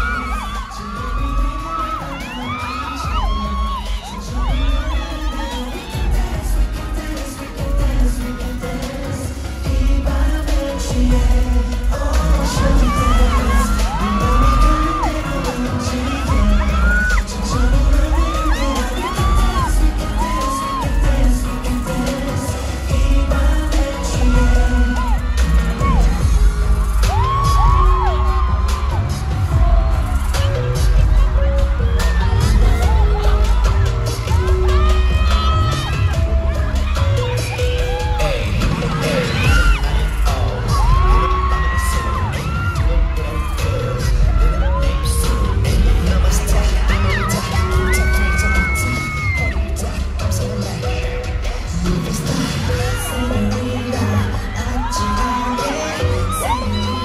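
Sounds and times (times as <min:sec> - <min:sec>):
dance song with thumping bass: 0:00.0 - 0:57.0
fans screaming and cheering: 0:00.0 - 0:57.0.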